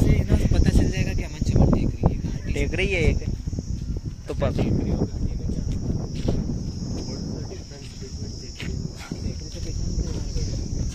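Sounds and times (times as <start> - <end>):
high-pitched insect buzz: 0.0 - 10.9
wind rumble on microphone: 0.0 - 10.9.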